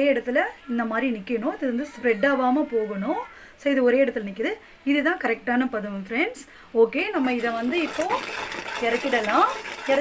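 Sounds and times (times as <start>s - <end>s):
ladle scraping syrup in metal pot: 7.2s - 10.0s.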